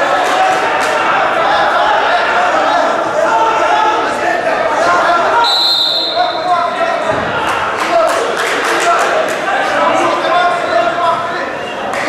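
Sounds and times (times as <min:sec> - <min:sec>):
high whistle: 0:05.4 - 0:06.5.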